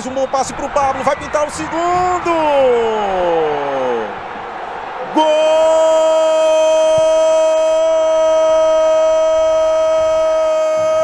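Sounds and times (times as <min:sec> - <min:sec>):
man commentating with drawn-out call: 0:00.0 - 0:04.2, 0:05.1 - 0:11.0
stadium crowd noise: 0:00.0 - 0:11.0.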